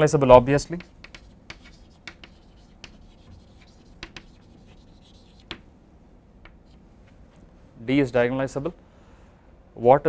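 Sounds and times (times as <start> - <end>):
chalk writing on blackboard: 0.6 - 5.6, 6.5 - 6.8.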